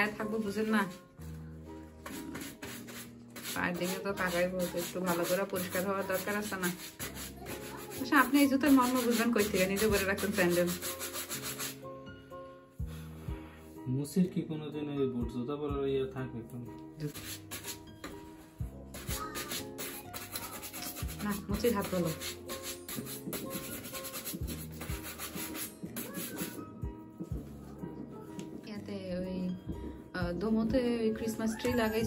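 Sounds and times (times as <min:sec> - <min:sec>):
sustained background music notes: 0:00.0 - 0:32.0
shoe brush scrubbing leather: 0:02.0 - 0:11.8, 0:18.9 - 0:26.6.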